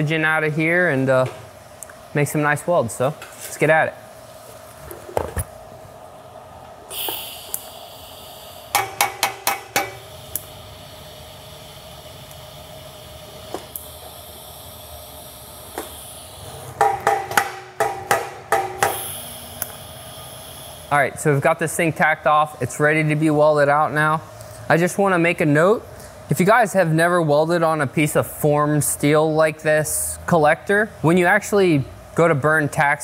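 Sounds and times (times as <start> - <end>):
steady background hiss: 0.0 - 33.0.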